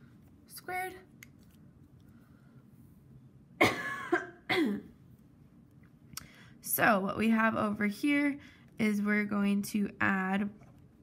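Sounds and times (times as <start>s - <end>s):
woman coughing: 3.6s - 5.0s.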